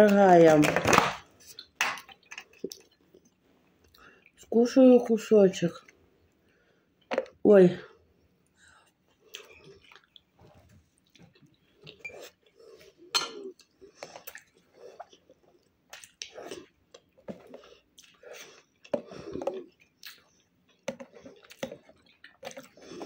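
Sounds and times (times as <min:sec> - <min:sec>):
person chewing: 0:01.4 - 0:04.4, 0:08.7 - 0:23.0.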